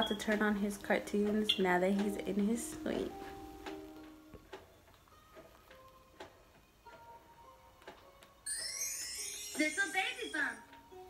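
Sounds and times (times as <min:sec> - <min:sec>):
soft music with ticking notes: 0:00.0 - 0:11.0
sparkling chime twinkle: 0:08.4 - 0:10.7.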